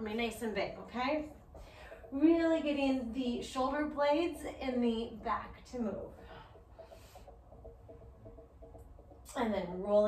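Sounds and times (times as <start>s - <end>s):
faint broken tones: 0.0s - 10.0s
low steady hum: 0.0s - 10.0s.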